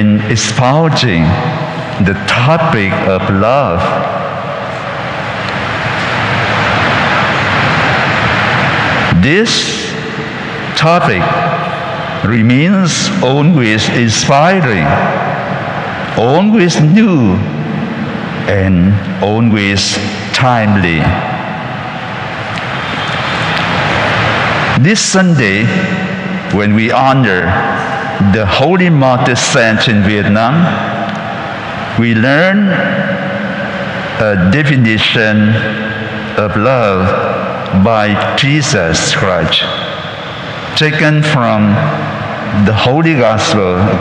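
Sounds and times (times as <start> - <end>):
loud steady rushing noise: 0.0 - 44.0
low hum: 0.0 - 44.0.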